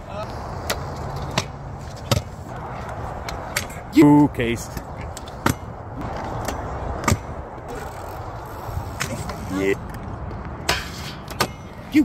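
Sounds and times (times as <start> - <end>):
scooter wheels scraping concrete: 0.1 - 3.8, 4.9 - 10.1.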